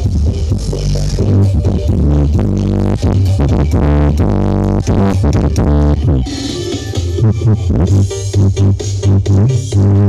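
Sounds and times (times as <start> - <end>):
deep bass beat: 0.0 - 10.0
loud electronic dance music: 0.0 - 10.0.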